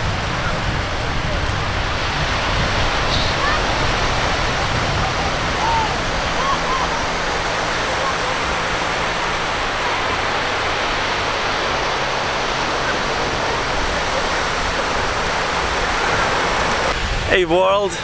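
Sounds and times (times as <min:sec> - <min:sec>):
surf breaking on beach: 0:00.0 - 0:18.0
wind noise on microphone: 0:00.0 - 0:18.0.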